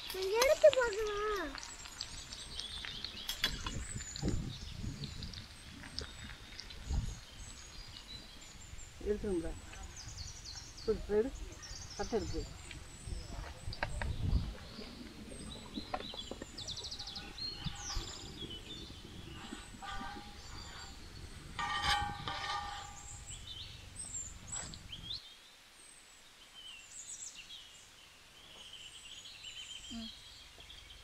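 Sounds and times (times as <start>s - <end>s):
low outdoor rumble: 0.0s - 25.2s
small birds chirping: 0.0s - 31.0s.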